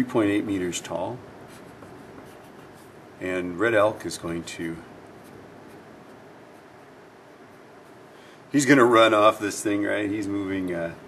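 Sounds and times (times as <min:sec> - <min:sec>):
pencil scratching on paper: 0:01.5 - 0:03.0.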